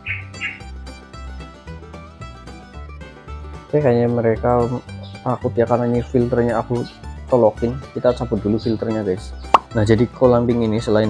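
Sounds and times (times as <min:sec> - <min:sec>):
plucked string tune: 0:00.0 - 0:11.0.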